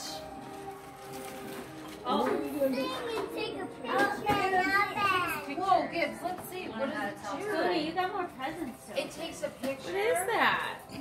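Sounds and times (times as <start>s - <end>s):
quiet music: 0.0s - 11.0s
adults and children talking: 1.9s - 11.0s.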